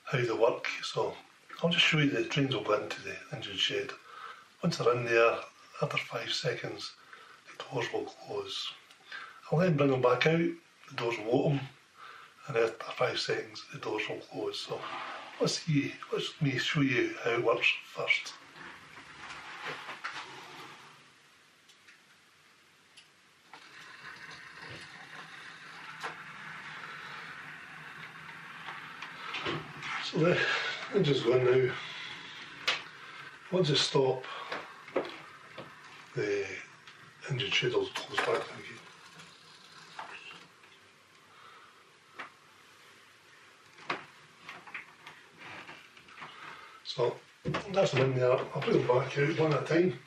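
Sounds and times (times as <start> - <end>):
small electric motors whirring: 23.5 - 33.5.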